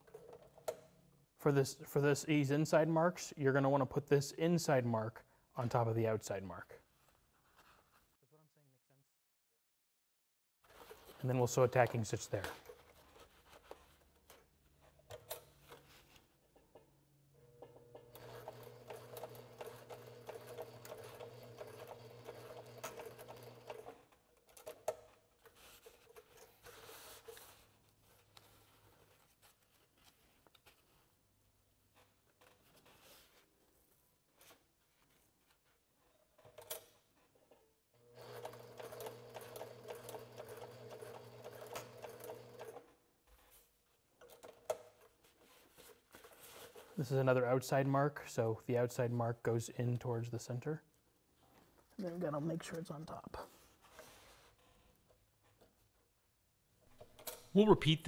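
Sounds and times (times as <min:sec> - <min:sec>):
sewing machine stitching: 0:17.6 - 0:24.9, 0:38.0 - 0:42.9.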